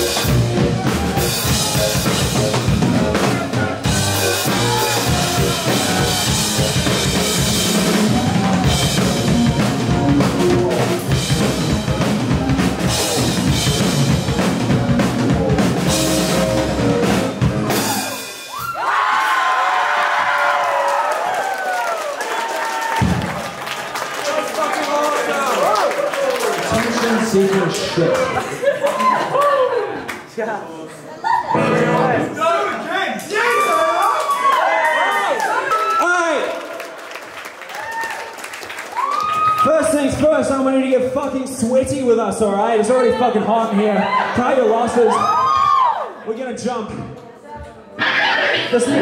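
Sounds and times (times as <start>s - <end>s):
drum kit playing: 0.0s - 18.8s, 31.6s - 32.5s
voices cheering and whooping: 17.8s - 23.4s, 27.8s - 30.1s, 33.3s - 36.7s, 37.7s - 38.3s, 38.9s - 39.8s, 43.8s - 46.2s.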